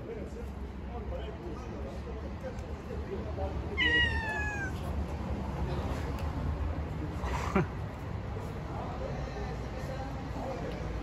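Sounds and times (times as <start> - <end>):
cat meowing: 3.8 - 4.9.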